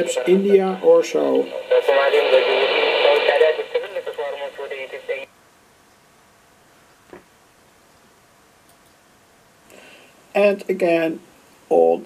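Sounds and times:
voice through radio loudspeaker: 0.0s - 5.3s
faint radio hiss: 0.0s - 12.0s.

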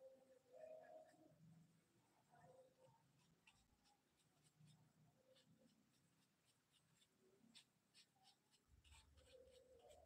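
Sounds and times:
brush strokes on paper: 2.8s - 10.0s.

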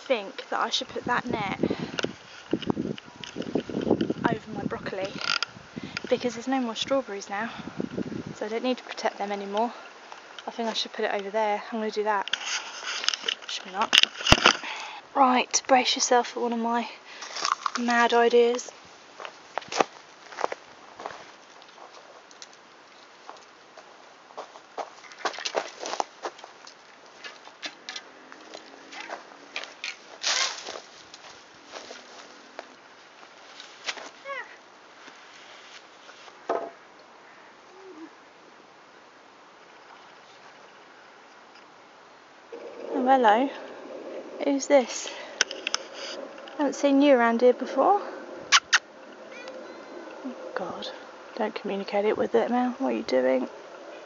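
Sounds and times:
footsteps on bark chips: 17.2s - 18.0s, 19.2s - 34.3s.

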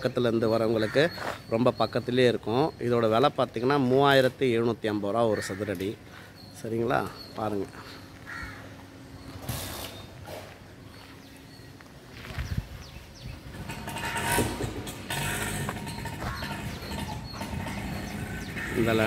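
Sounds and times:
street noise: 0.0s - 19.0s
crows cawing: 0.7s - 1.5s, 5.2s - 6.4s, 7.0s - 9.0s, 15.3s - 19.0s
motorcycle engine passing: 13.4s - 19.0s.

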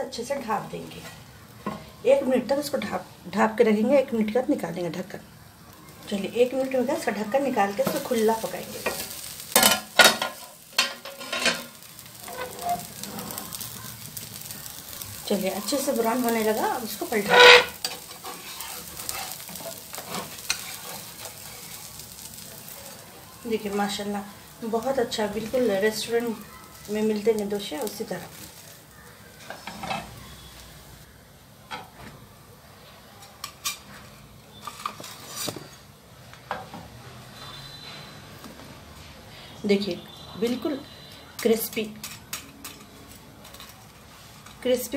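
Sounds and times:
food sizzling on griddle: 0.1s - 31.9s, 32.8s - 36.0s, 37.2s - 44.9s
utensils clinking on metal pan: 7.7s - 13.3s, 15.7s - 21.5s
steel plate clanking and scraping: 9.6s - 13.4s, 17.2s - 18.0s.

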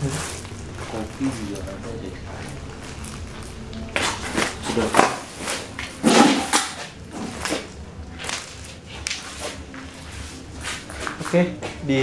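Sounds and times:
footsteps on plastic litter: 0.0s - 12.0s.

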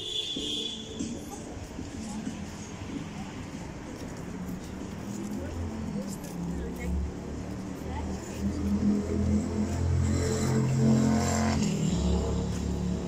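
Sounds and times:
traffic hum: 0.0s - 13.0s
voices of passers-by: 0.0s - 13.0s
engine passing by: 3.2s - 13.0s.

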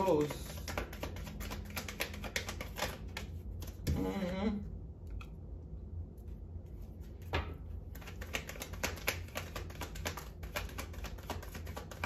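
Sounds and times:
cards being shuffled: 0.0s - 4.0s, 7.0s - 12.0s.

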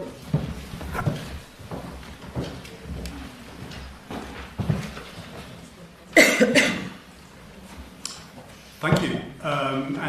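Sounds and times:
man coughing: 6.2s - 6.9s.

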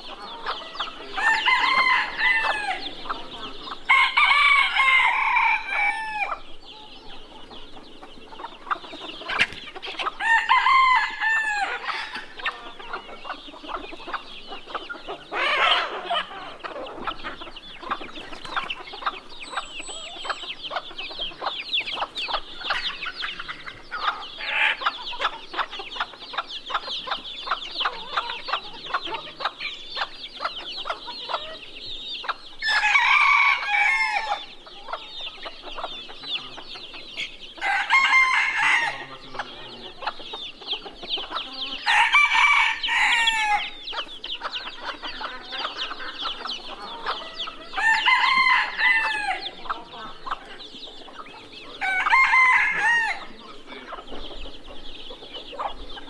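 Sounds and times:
chicks peeping: 0.0s - 56.0s
hens clucking: 0.0s - 56.0s
roosters crowing: 0.0s - 56.0s.

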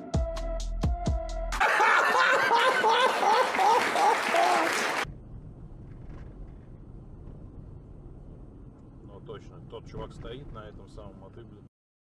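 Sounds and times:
electronic music with drum beat: 0.0s - 1.6s
audience laughter: 1.6s - 5.0s
applause: 1.6s - 5.1s.

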